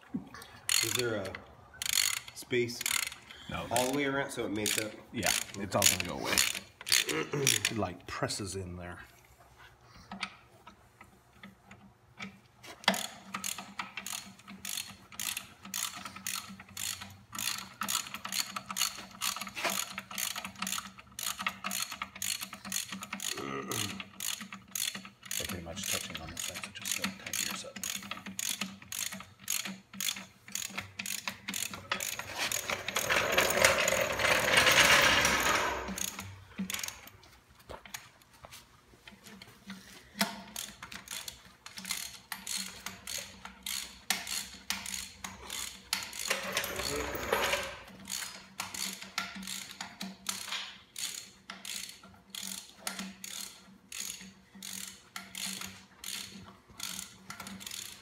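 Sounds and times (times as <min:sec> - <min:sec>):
ratchet wrench clicking: 0:00.7 - 0:07.8, 0:11.4 - 0:37.1, 0:40.1 - 0:58.0.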